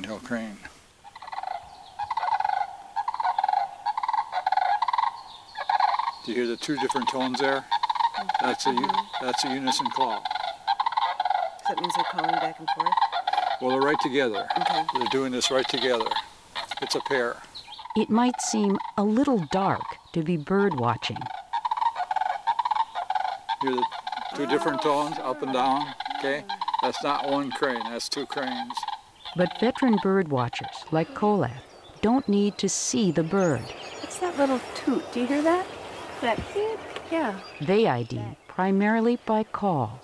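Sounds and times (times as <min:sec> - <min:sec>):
man speaking: 0:00.0 - 0:00.7, 0:06.3 - 0:07.6, 0:08.4 - 0:10.2, 0:13.6 - 0:17.4, 0:23.6 - 0:28.9
recorded crane calls: 0:00.0 - 0:40.0.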